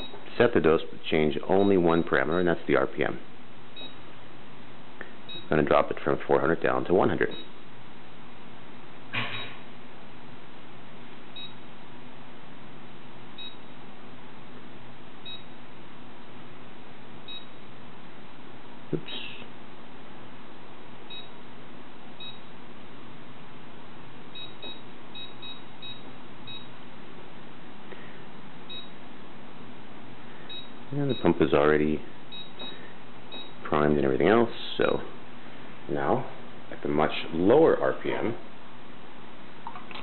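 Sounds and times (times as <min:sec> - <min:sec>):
high keypad beeps: 0:00.0 - 0:00.2, 0:03.8 - 0:04.0, 0:05.3 - 0:05.5, 0:11.4 - 0:11.6, 0:13.4 - 0:13.7, 0:15.2 - 0:15.6, 0:17.3 - 0:17.6, 0:21.1 - 0:21.4, 0:22.2 - 0:22.5, 0:24.3 - 0:26.7, 0:28.7 - 0:29.0, 0:30.5 - 0:31.3, 0:32.3 - 0:33.6
steady low hum: 0:00.0 - 0:40.0.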